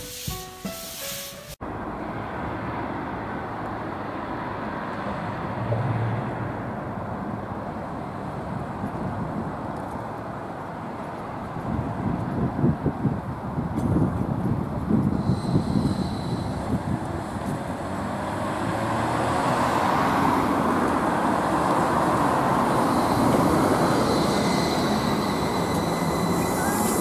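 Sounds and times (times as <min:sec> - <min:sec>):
passing road traffic: 0:00.0 - 0:27.0
trolleybus approaching: 0:00.0 - 0:27.0
thin high whine: 0:15.2 - 0:17.1, 0:22.6 - 0:27.0.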